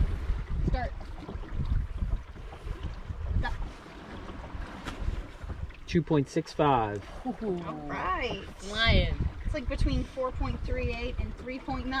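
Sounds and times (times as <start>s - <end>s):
wind buffeting microphone: 0.0s - 6.2s, 7.0s - 12.0s
water washing along hull: 0.0s - 12.0s.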